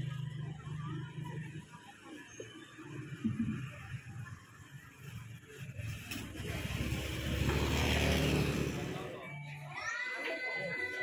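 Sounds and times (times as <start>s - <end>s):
vehicle engine passing by: 5.7s - 9.3s.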